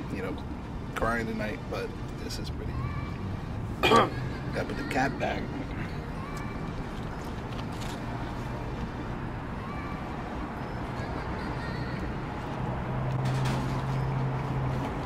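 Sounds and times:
engine hum: 0.0 - 15.0.

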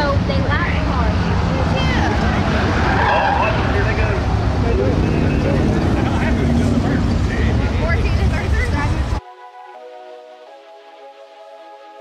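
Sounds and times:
race car engines droning: 0.0 - 9.2.

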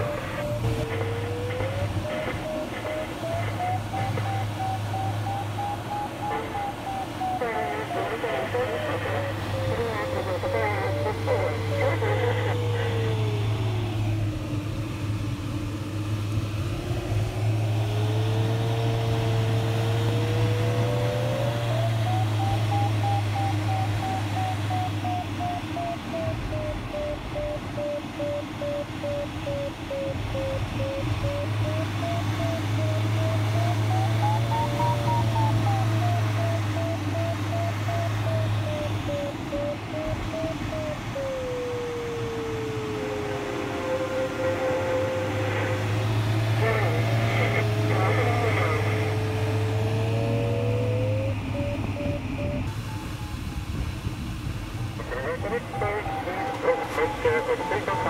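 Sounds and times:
variometer tone and beeping: 0.0 - 14.5, 17.0 - 53.4, 55.0 - 58.0
cockpit airflow noise: 0.0 - 58.0.

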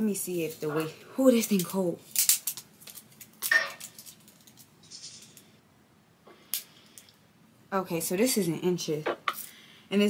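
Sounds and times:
tape measure rustle: 2.1 - 5.6.

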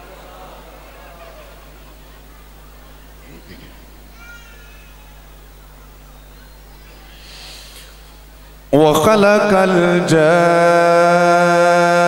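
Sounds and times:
steady low hum: 0.0 - 12.0
faint high-pitched cry: 4.1 - 5.4.

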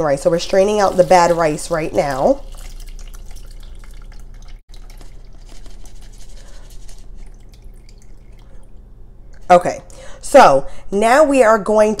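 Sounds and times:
water dripping through a strainer: 2.0 - 6.1, 6.9 - 8.9.

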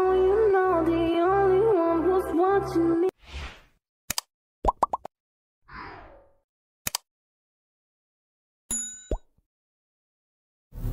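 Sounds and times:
quick double click: 6.8 - 7.1.

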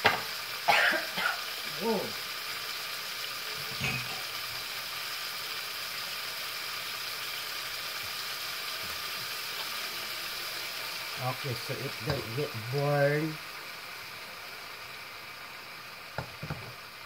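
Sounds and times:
vegetables sizzling in frying pan: 0.0 - 17.0.

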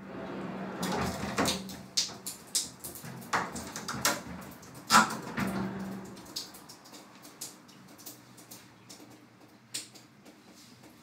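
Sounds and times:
glass shower door sliding: 0.0 - 1.8, 3.8 - 6.2.

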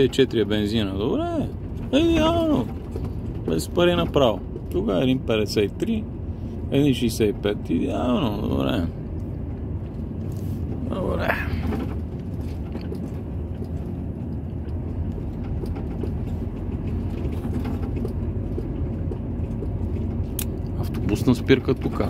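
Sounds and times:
lorry engine and tyres rumbling: 0.0 - 22.0.

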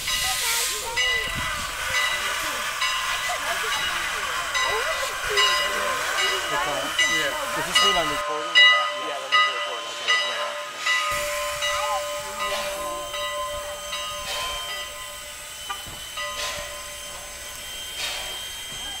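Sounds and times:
steam locomotive hissing steam: 0.0 - 19.0
steady whine: 10.8 - 19.0.

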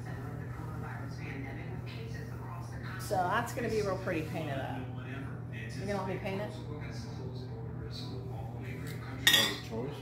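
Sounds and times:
glass jars clinking: 9.2 - 9.7.

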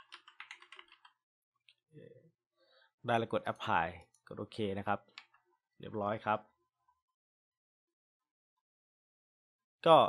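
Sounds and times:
faint keyboard typing: 0.0 - 1.2.

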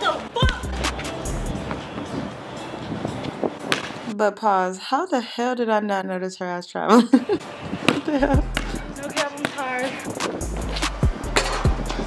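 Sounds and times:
open-air noise: 0.0 - 12.0
basketball bouncing on hard court: 7.9 - 9.7.

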